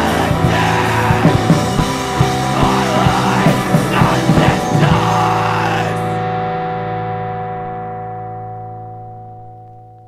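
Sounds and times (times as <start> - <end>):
rock band playing: 0.0 - 9.1
distorted electric guitar chord ringing: 0.0 - 10.0.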